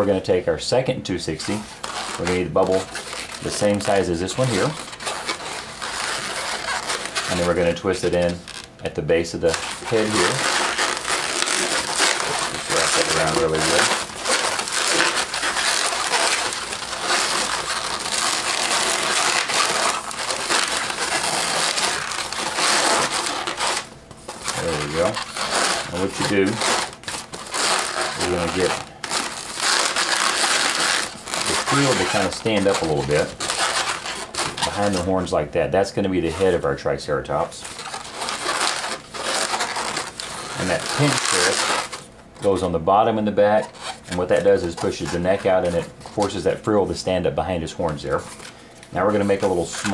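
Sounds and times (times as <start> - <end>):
balloons squeaking and rubbing: 0.0 - 49.9.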